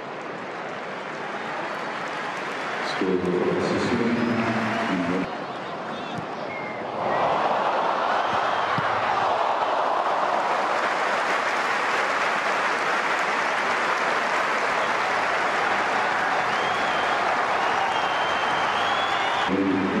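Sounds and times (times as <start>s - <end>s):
crowd cheering and applauding: 0.0s - 5.4s, 6.9s - 20.0s.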